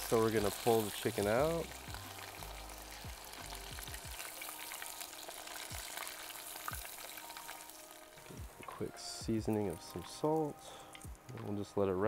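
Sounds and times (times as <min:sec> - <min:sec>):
deep-frying sizzle in oil: 0:00.0 - 0:11.8.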